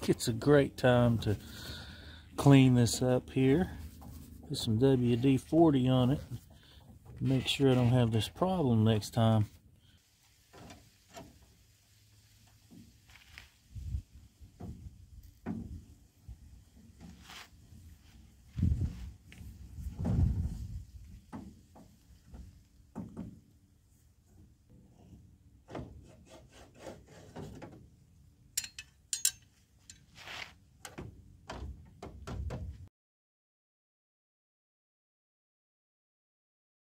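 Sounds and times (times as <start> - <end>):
metal rod knocking and clunking: 28.6 - 30.1.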